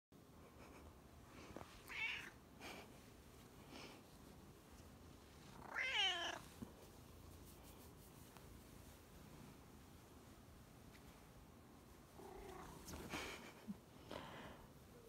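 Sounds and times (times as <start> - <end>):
cat meowing: 1.8 - 2.4, 5.6 - 6.4.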